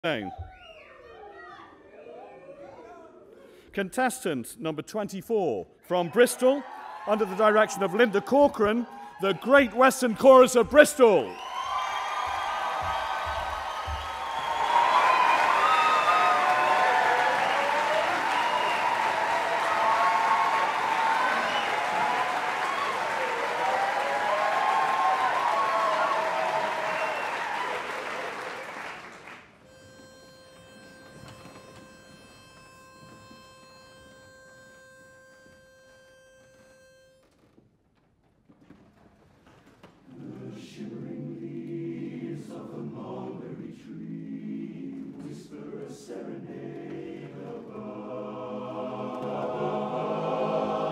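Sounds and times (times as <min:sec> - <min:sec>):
audience applauding and cheering: 0:05.9 - 0:29.7
pitch pipe note: 0:29.7 - 0:37.3
men's chorus singing a cappella: 0:40.1 - 0:50.9.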